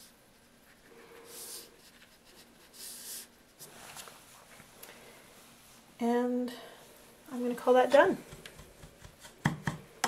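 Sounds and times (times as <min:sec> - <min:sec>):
dry brush dragged across paper: 0:00.0 - 0:04.5.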